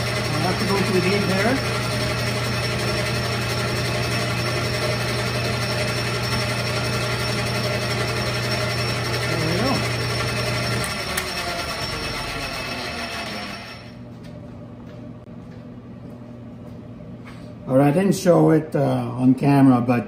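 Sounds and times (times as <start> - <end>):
metal lathe humming: 0.0 - 14.0.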